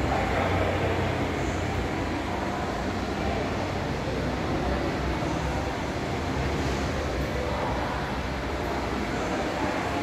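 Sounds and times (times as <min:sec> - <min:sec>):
indoor room hum and hiss: 0:00.0 - 0:10.0.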